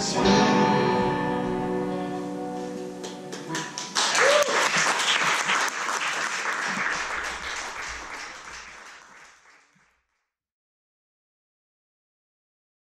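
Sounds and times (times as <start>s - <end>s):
audience applause: 3.0s - 10.0s.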